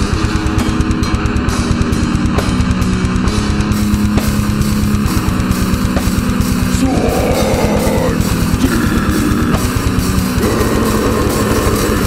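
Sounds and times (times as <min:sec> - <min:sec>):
distorted electric guitars: 0:00.0 - 0:12.0
fast dense drumming: 0:00.0 - 0:12.0
growled vocals: 0:06.8 - 0:09.8, 0:10.4 - 0:12.0.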